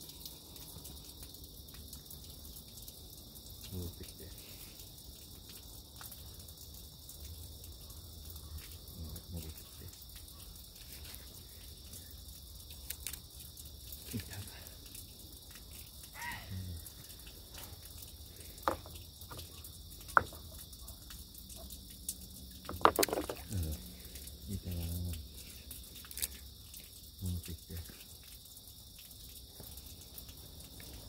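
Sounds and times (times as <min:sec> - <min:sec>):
high insect drone: 0:00.0 - 0:31.0.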